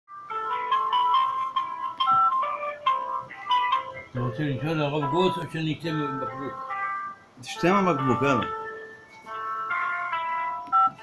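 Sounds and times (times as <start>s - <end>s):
simple electronic tune: 0.2s - 11.0s.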